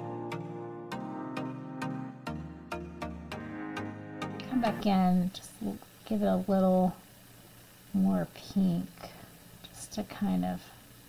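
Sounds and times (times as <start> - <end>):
soft whispery hisses: 7.9 - 10.9.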